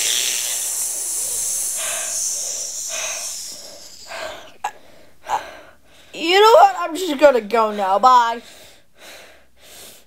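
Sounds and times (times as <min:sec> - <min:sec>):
loud hissing: 0:00.0 - 0:04.7.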